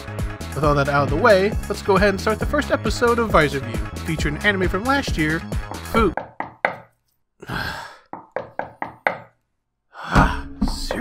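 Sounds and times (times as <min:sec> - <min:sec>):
sharp knocks: 0:05.6 - 0:06.9, 0:08.1 - 0:09.4.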